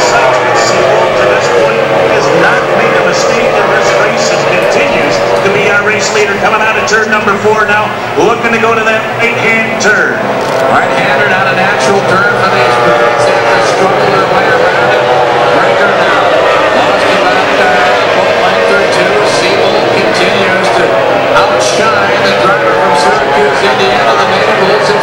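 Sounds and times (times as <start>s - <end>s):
racing powerboat engines revving: 0.0s - 25.0s.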